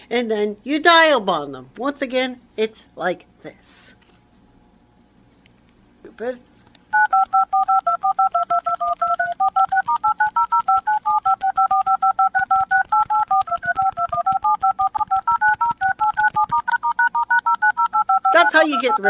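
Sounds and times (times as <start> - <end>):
phone keypad touch-tone beeps: 6.9 - 19.0.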